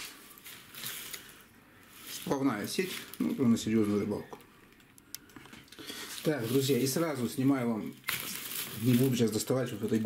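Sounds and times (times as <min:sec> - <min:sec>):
fishing net rustling: 0:00.0 - 0:04.2, 0:05.6 - 0:09.8.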